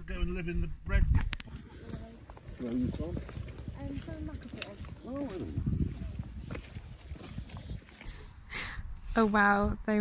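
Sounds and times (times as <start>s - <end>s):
shoes crunching on gravel: 1.4s - 8.2s.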